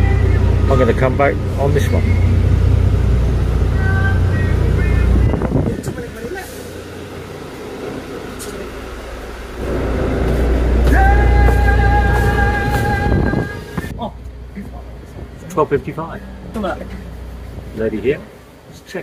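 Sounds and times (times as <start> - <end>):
steady held tone: 0.0 - 14.5
bus engine rumbling: 0.0 - 19.0.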